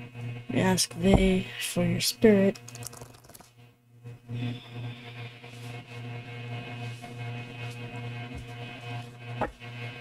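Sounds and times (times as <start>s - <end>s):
low hum: 0.0s - 10.0s
cards riffle-shuffled: 2.5s - 3.5s.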